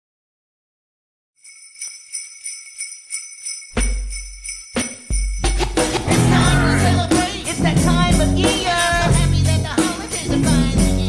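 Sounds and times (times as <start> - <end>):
christmas song music: 1.4 - 11.0
sleigh bells shaken: 1.4 - 11.0.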